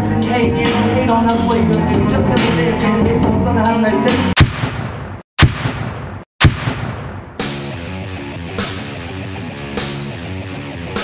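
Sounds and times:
heavy rock music: 0:00.0 - 0:04.4, 0:06.9 - 0:11.0
loud booming impact hits: 0:04.4 - 0:07.9.

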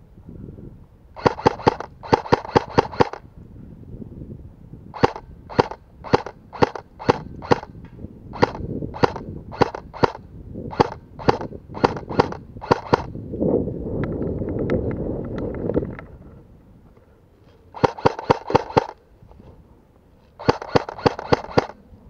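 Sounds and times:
airsoft rifle shots: 0:01.2 - 0:03.2, 0:05.0 - 0:13.1, 0:17.8 - 0:19.0, 0:20.4 - 0:21.8.

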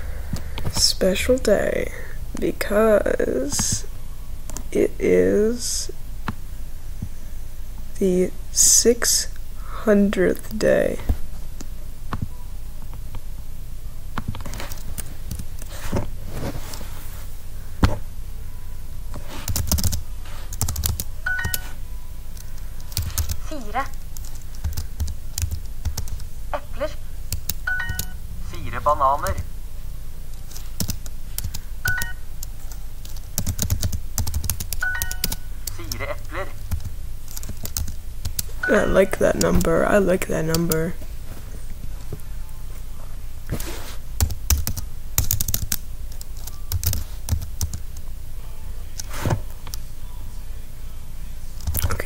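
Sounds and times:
computer keyboard keystrokes: 0:19.5 - 0:21.7, 0:22.4 - 0:26.3, 0:27.3 - 0:28.1, 0:30.5 - 0:35.8, 0:36.7 - 0:38.5, 0:44.2 - 0:48.0, 0:51.6 - 0:51.9
computer input clicks: 0:20.6 - 0:21.7, 0:27.4 - 0:28.2, 0:30.8 - 0:36.0.

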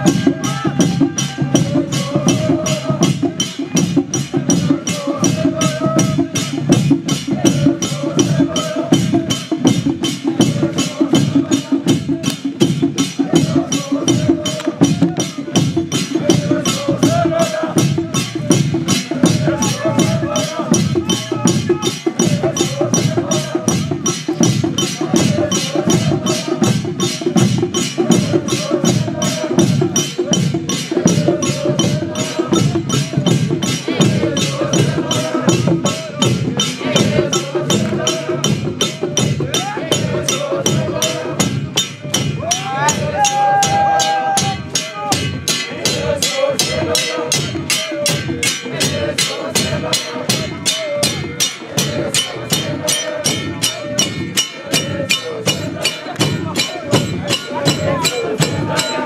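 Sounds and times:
group singing a hymn: 0:00.0 - 0:59.0
steady percussion beat: 0:00.0 - 0:59.0.

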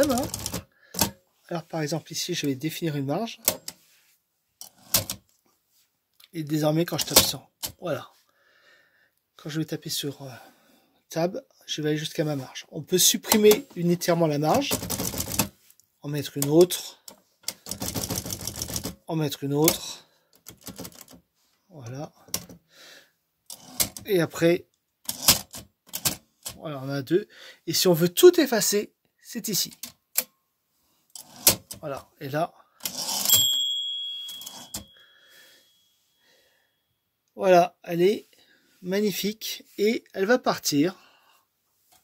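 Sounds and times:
manual typewriter clicking: 0:00.0 - 0:01.2, 0:04.6 - 0:05.2, 0:14.5 - 0:15.5, 0:17.1 - 0:19.0, 0:20.4 - 0:21.2, 0:25.1 - 0:26.6, 0:31.2 - 0:31.8
typewriter carriage sliding: 0:00.0 - 0:01.2, 0:04.6 - 0:05.2, 0:23.5 - 0:24.1, 0:25.1 - 0:26.2, 0:31.2 - 0:31.8, 0:32.8 - 0:33.5
typewriter bell ding: 0:33.2 - 0:35.2.

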